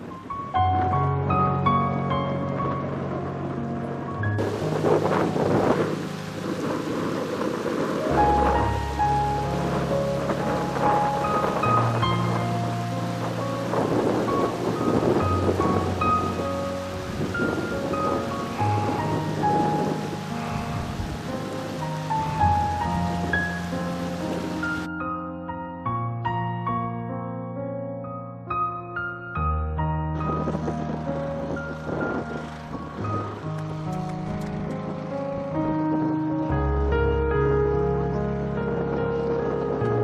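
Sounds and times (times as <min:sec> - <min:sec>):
rolling thunder: 0:00.0 - 0:25.0, 0:30.0 - 0:40.0
steady rain: 0:00.0 - 0:25.0, 0:30.2 - 0:40.0
slow instrumental music: 0:00.0 - 0:40.0.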